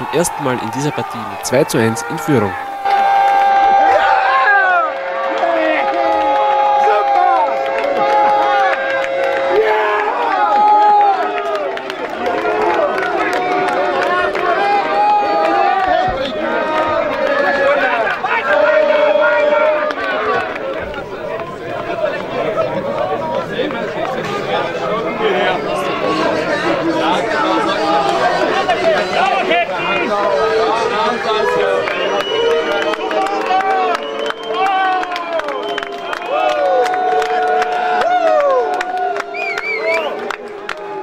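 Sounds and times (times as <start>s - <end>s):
crowd cheering and shouting: 0.0s - 41.0s
long steady tone: 1.0s - 11.2s.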